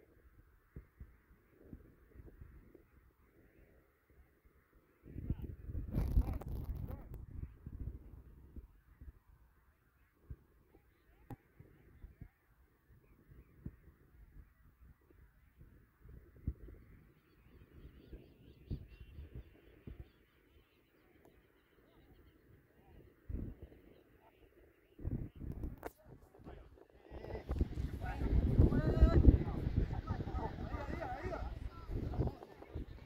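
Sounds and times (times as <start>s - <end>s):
microphone rumbling: 5.1s - 8.0s, 25.0s - 33.0s
distant players shouting: 27.2s - 32.8s.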